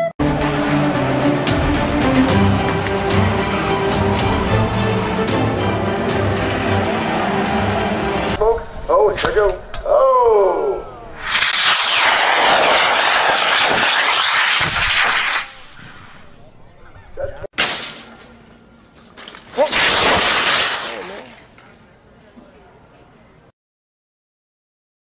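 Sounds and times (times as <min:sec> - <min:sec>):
rocket motor hissing: 0:11.2 - 0:16.3
sharp crack: 0:11.2 - 0:16.3, 0:17.6 - 0:18.3, 0:19.4 - 0:21.5.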